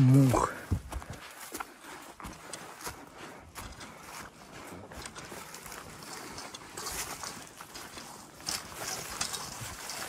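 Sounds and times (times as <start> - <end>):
footsteps through dry brush: 0.0 - 10.0
twigs swishing and crackling: 0.0 - 10.0.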